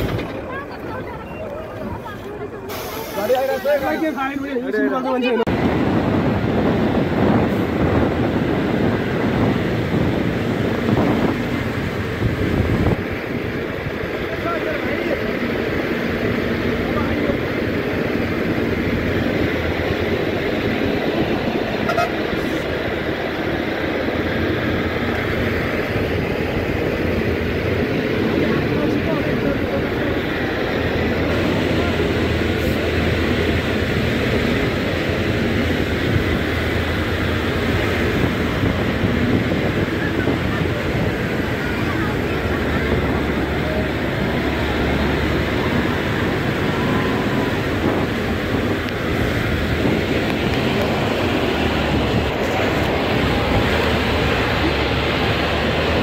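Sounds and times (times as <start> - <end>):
passengers' voices: 0.0 - 5.6, 25.7 - 33.9, 37.9 - 56.0
bus engine and road noise: 0.0 - 56.0.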